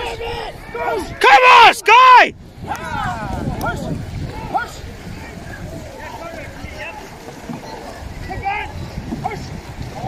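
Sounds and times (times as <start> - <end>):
wind noise on microphone: 0.0 - 1.4, 2.2 - 10.0
faint shouted voices: 0.0 - 10.0
paddles splashing water: 0.0 - 10.0.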